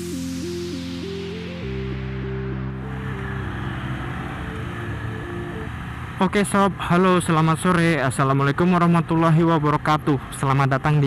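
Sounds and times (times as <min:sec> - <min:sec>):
road and wind noise: 0:00.0 - 0:11.0.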